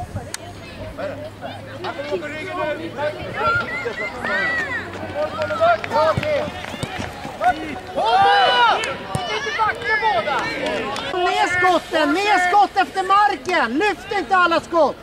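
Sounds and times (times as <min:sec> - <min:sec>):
voices shouting and calling out: 0:00.0 - 0:15.0.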